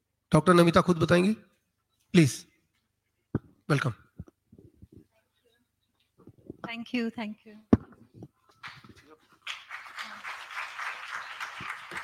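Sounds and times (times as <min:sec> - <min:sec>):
audience applauding: 0:08.6 - 0:12.0.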